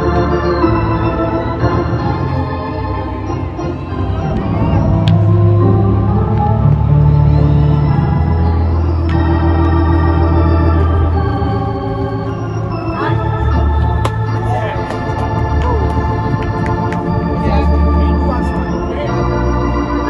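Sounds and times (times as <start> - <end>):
organ playing sustained chords: 0.0 - 20.0.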